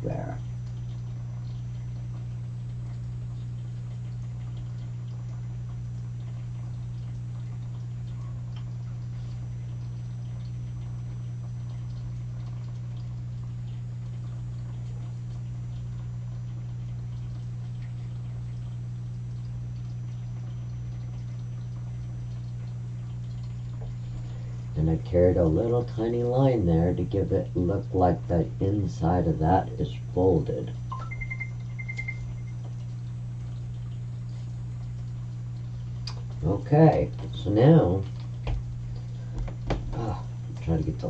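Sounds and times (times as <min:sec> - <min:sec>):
low electrical hum: 0:00.0 - 0:41.0.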